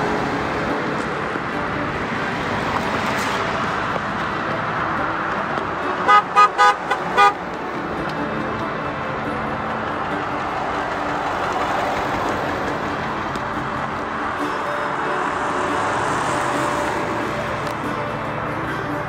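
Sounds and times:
cars driving past: 0.0s - 19.0s
car horn honk: 5.8s - 7.6s.

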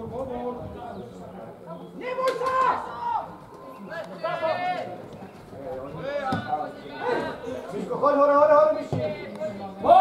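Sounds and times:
voices shouting calls: 1.6s - 10.0s.

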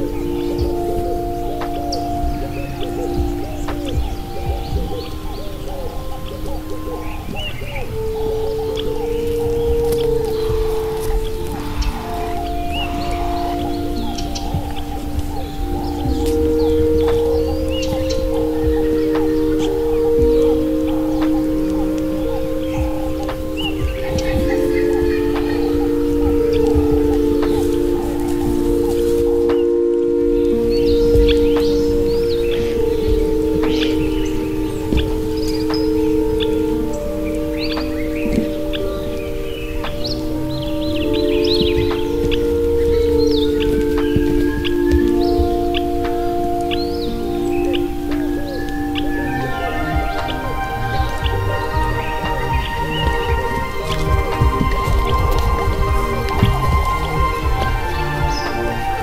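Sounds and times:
chime-like tones: 0.0s - 59.0s
steady hiss: 0.0s - 59.0s.

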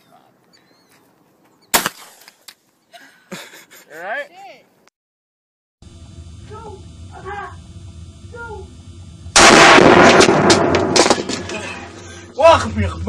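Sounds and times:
loud rifle shot: 9.3s - 11.5s.

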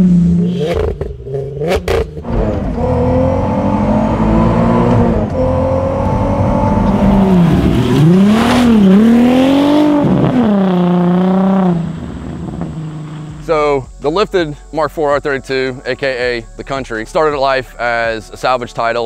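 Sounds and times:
car engine revving: 0.0s - 14.0s.

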